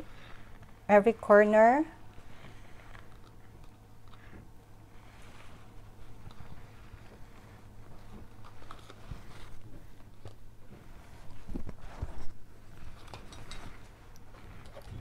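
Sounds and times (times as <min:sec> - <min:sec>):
steady low hum: 0:00.0 - 0:15.0
gloved hands handling objects: 0:02.1 - 0:15.0.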